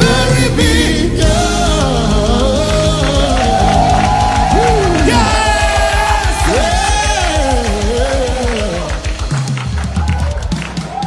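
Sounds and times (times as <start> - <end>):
gospel singing over low beat: 0.0 - 9.7.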